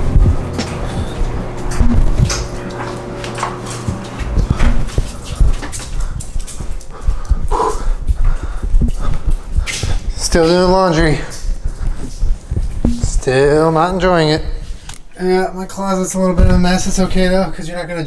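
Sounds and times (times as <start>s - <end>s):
knocks and thumps of handling: 0.0s - 6.8s, 12.5s - 13.3s.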